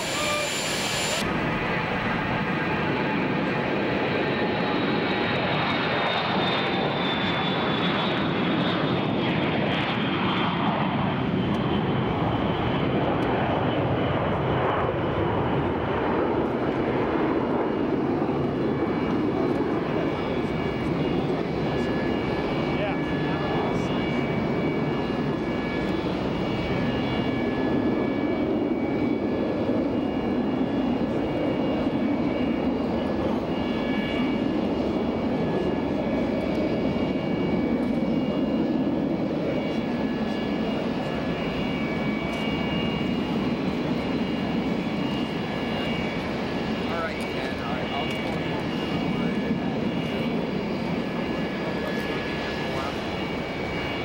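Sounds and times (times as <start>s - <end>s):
high whine falling in pitch: 0.0s - 1.4s
jet engine roar: 0.0s - 54.0s.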